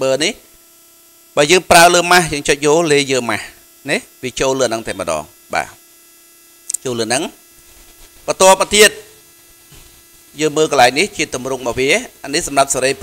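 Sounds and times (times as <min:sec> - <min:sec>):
steady electrical hum: 0:00.0 - 0:13.0
man speaking: 0:01.4 - 0:05.8, 0:06.7 - 0:07.4, 0:08.3 - 0:09.2, 0:10.4 - 0:13.0.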